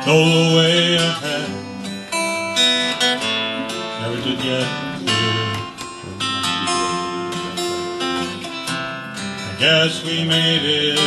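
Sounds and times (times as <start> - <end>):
acoustic guitar strumming: 0.0 - 11.0.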